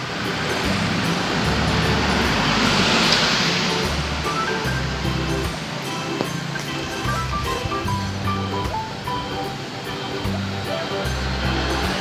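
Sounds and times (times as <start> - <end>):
background music with bass line: 0.0 - 12.0
passing vehicle rushing: 0.0 - 12.0
street traffic: 0.0 - 12.0.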